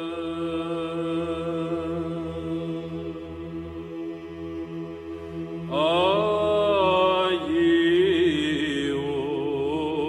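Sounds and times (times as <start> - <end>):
low chant drone: 0.0 - 10.0
solo voice singing: 5.7 - 10.0.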